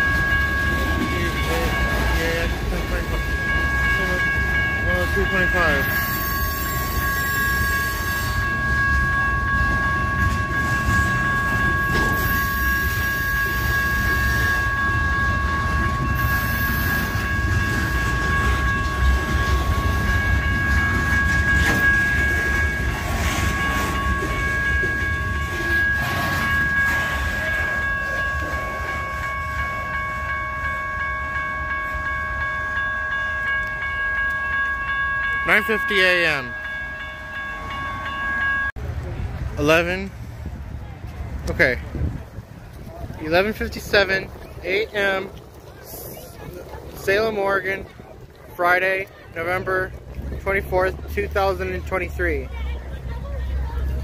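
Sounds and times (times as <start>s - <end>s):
crossing warning bell: 0.0s - 40.7s, 41.3s - 54.0s
freight train wheels rumbling: 0.0s - 54.0s.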